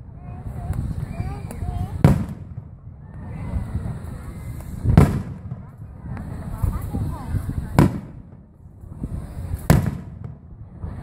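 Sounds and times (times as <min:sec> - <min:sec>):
firework shell bursting: 0:01.8 - 0:10.4.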